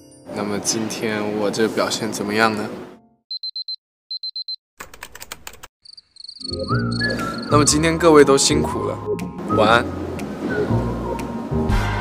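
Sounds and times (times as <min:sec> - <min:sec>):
digital alarm clock beeping: 0:03.3 - 0:04.6, 0:05.9 - 0:07.7.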